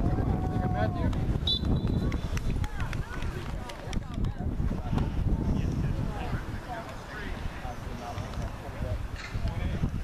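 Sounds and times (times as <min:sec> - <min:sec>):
wind on microphone: 0:00.0 - 0:10.0.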